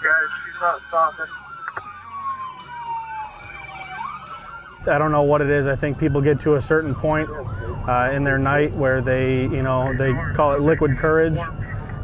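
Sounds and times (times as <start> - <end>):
police siren wail: 0.0 - 12.0
yelping siren sweeps: 0.0 - 12.0.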